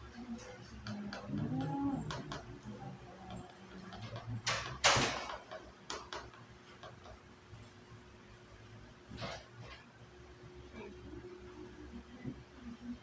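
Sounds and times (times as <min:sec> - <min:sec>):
low murmured voice: 0:00.0 - 0:03.5.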